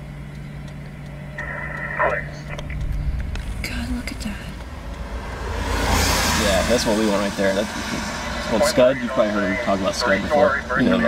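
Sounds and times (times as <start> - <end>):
vehicle rumble: 0.0 - 11.0
scanner radio chatter: 1.3 - 2.8, 8.2 - 11.0
rushing noise: 2.6 - 9.1.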